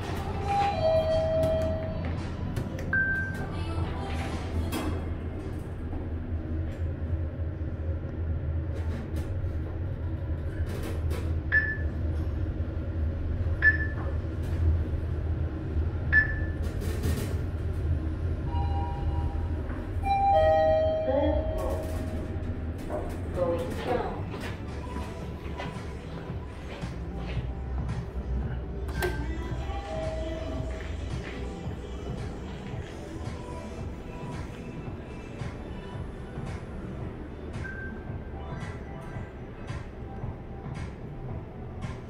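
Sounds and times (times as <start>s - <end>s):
elevator hum: 0.0s - 42.0s.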